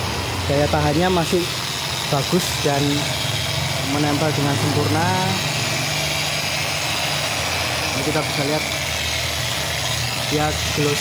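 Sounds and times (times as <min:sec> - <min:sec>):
electric car polisher motor hum: 0:00.0 - 0:11.0.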